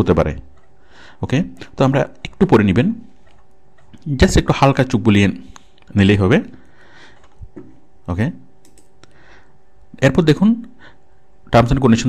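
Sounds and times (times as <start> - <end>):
computer mouse clicks: 8.6 - 8.9.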